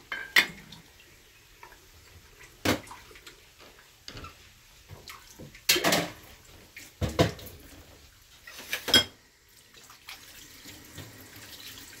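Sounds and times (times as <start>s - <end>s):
tap water running into sink: 0.0s - 12.0s.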